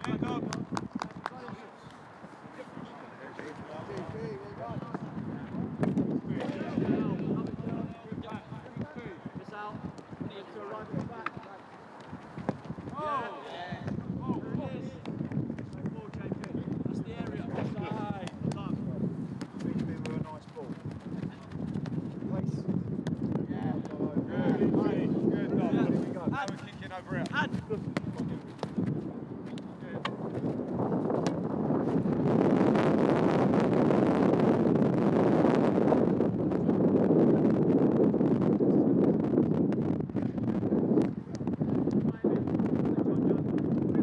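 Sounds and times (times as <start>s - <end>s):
wind blowing across microphone: 0.0s - 44.0s
footballs being kicked: 5.8s - 7.8s, 9.8s - 13.0s, 15.0s - 22.3s, 25.9s - 32.0s.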